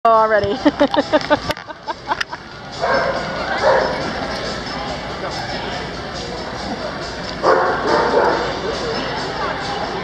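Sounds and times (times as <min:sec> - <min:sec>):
dog barking: 0:07.4 - 0:08.5.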